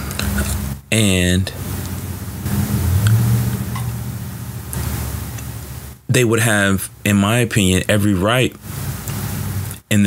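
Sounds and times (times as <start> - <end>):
low rumble: 1.6 - 6.0.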